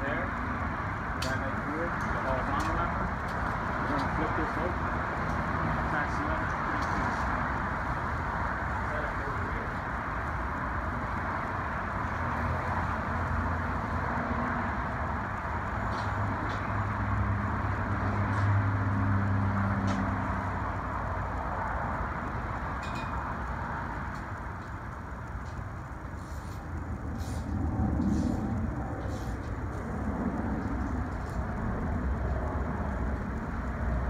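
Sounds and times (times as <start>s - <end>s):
distant road traffic rumble: 0.0s - 34.0s
low engine-like hum: 0.0s - 34.0s.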